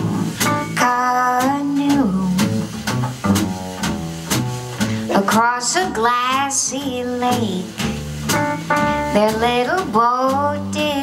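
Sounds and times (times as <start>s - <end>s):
double bass plucking low notes: 0.0s - 11.0s
jazz band playing: 0.0s - 11.0s.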